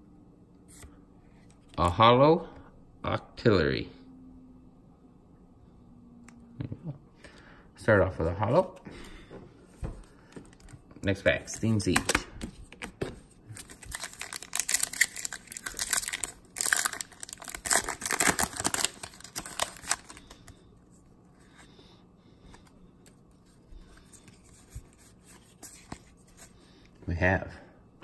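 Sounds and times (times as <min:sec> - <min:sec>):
cards rustling: 0:10.0 - 0:20.6, 0:22.4 - 0:26.9
foil wrapper tearing and crinkling: 0:13.6 - 0:20.4.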